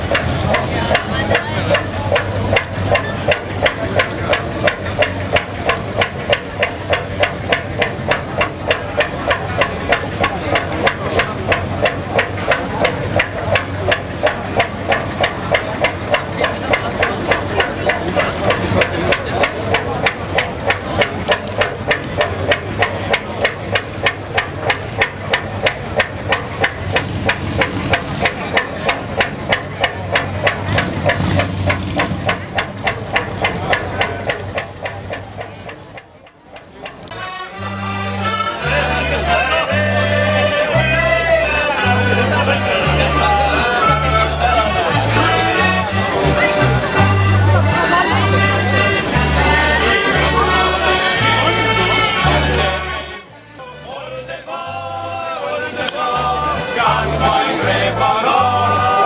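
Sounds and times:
boat engine knocking: 0:00.0 - 0:59.0.

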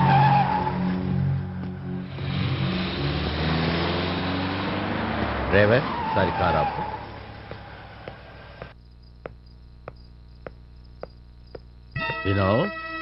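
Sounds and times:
car engine and road noise: 0:00.0 - 0:11.9
crickets chirping: 0:06.8 - 0:13.0.

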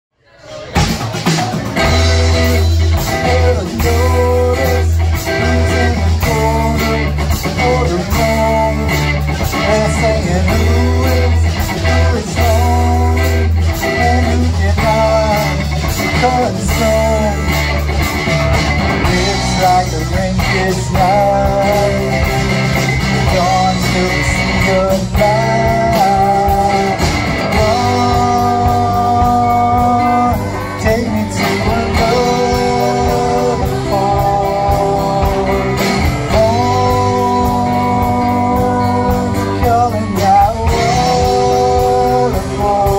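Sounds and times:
rock band playing live: 0:00.4 - 0:42.9
drum kit: 0:00.6 - 0:42.9
steady bass line: 0:00.7 - 0:42.9
acoustic guitar strumming: 0:01.1 - 0:42.9.

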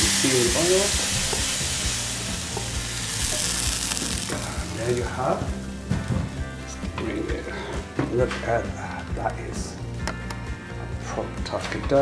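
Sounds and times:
hot oil sizzling in liquid: 0:00.0 - 0:05.9.

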